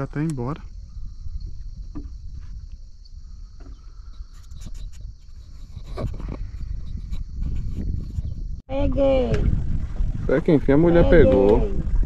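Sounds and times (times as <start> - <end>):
insects buzzing: 0.0 - 8.6
low rumble: 5.8 - 12.0.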